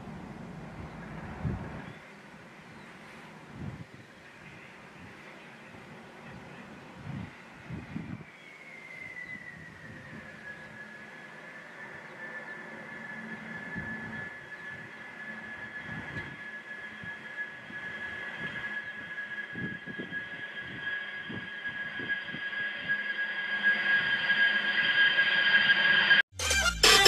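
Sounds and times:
low rumble: 0:00.0 - 0:02.0
jet engines whining: 0:00.0 - 0:26.9.

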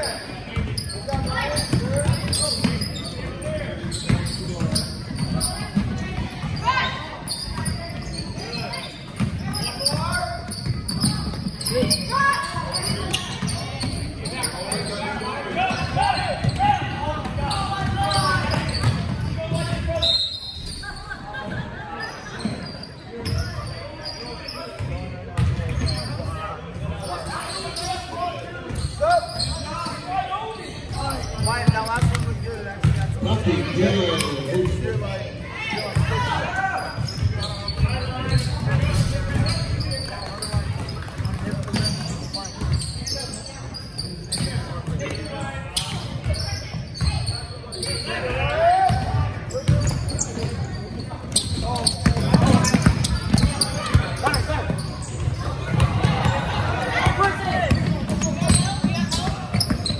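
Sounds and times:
people talking and calling out: 0:00.0 - 0:59.9.

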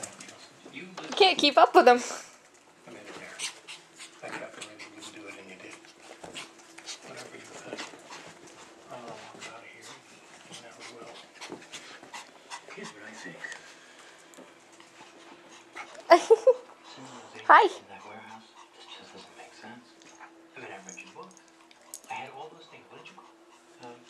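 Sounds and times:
dogs scuffling: 0:02.5 - 0:16.1
dogs panting: 0:02.5 - 0:24.0.

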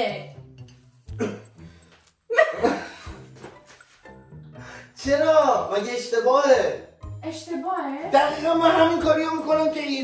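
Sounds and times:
person laughing: 0:02.3 - 0:03.1.

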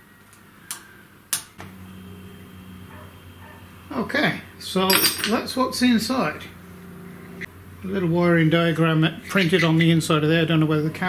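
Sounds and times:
steady low hum: 0:01.6 - 0:11.0.

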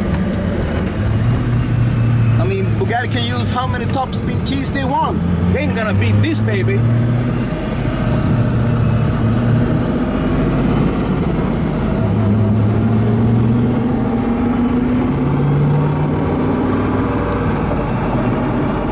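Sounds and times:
car engine inside cabin: 0:00.0 - 0:18.9
road noise: 0:00.0 - 0:18.9.

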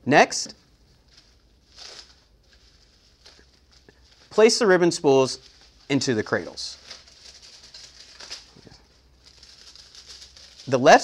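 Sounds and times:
plastic packaging crinkling: 0:00.9 - 0:11.0.

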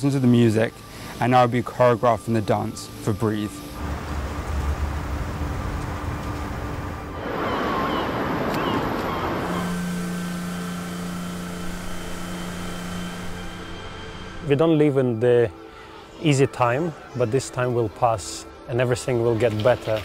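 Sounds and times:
fogger spraying hiss: 0:00.1 - 0:06.9, 0:09.3 - 0:14.5
low rumble: 0:03.8 - 0:14.6
background music chords: 0:09.3 - 0:20.0.

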